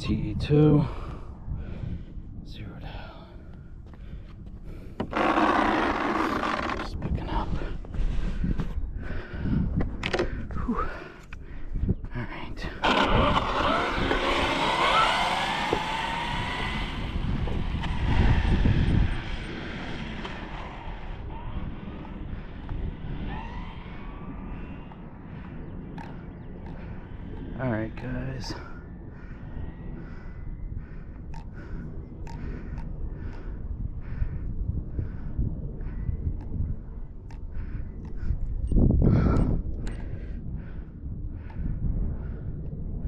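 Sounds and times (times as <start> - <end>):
rc car electric motor whining: 5.1 - 6.7, 12.8 - 21.2.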